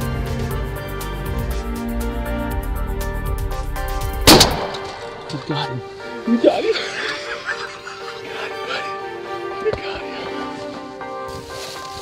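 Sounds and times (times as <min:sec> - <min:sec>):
background music with steady beat: 0:00.0 - 0:12.0
loud shotgun shot: 0:04.3 - 0:05.3.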